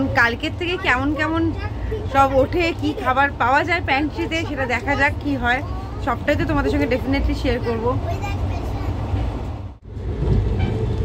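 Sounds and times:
train wheels rumbling: 0.0s - 11.0s.

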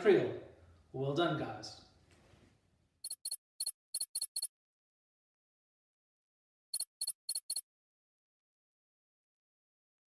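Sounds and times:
electronic chirps: 3.0s - 4.5s, 6.8s - 7.6s.

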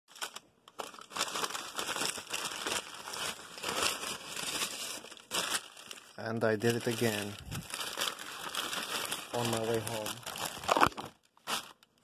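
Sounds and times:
paper bag rustling and crinkling: 0.1s - 12.0s.

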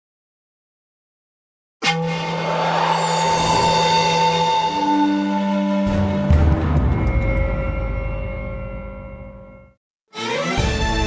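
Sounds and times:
synthesized drone: 1.8s - 7.2s.

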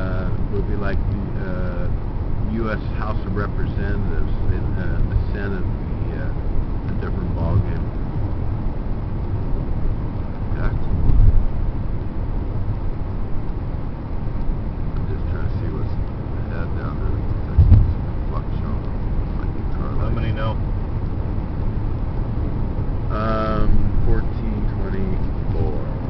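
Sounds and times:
tyres and engine rumble: 0.0s - 26.0s
low thumps: 1.9s - 26.0s.

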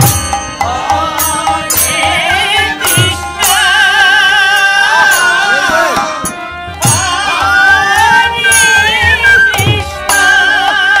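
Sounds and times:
hand cymbals: 0.0s - 11.0s
harmonium: 0.0s - 11.0s
flute: 4.8s - 11.0s.

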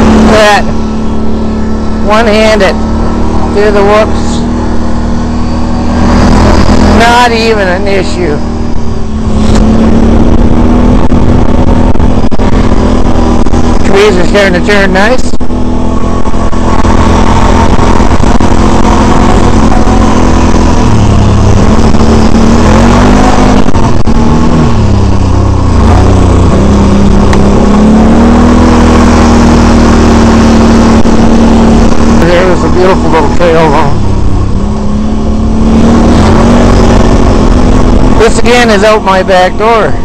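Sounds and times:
atv engine revving: 0.0s - 40.0s.

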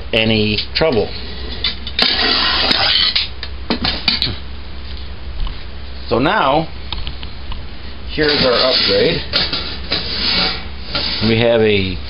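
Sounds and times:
metal pot scraping and rattling: 0.8s - 4.3s, 8.1s - 11.5s.

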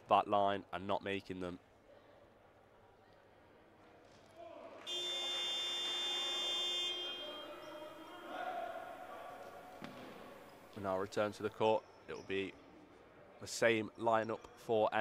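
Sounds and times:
scoreboard buzzer tone: 4.9s - 8.1s.

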